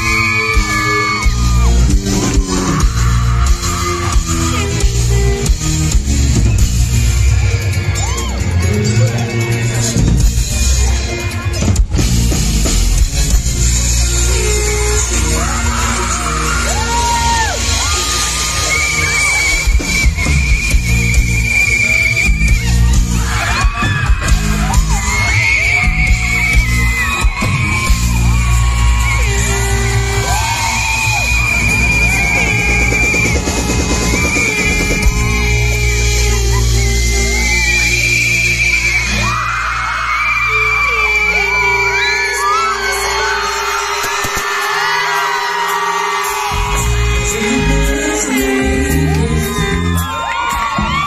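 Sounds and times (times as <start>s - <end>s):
heavy bass: 0.0s - 44.6s, 46.4s - 51.0s
drums: 0.0s - 51.0s
sliding lead melody: 0.0s - 51.0s.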